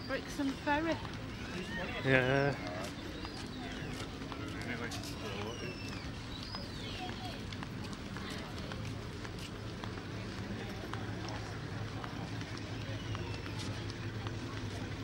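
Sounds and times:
distant voices: 0.0 - 15.0
faint footsteps: 0.0 - 15.0.

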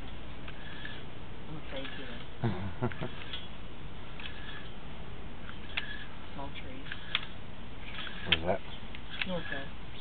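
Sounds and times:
steady background hiss: 0.0 - 10.0
sharp clicks: 6.8 - 9.4.

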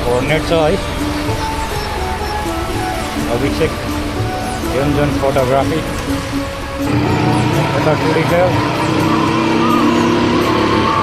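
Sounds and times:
motorcycle accelerating: 0.0 - 11.0
music with vocals: 0.0 - 11.0.

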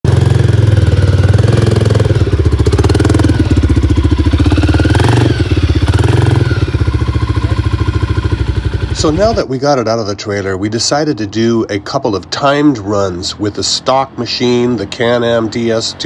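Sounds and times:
atv engine running: 0.1 - 11.8.

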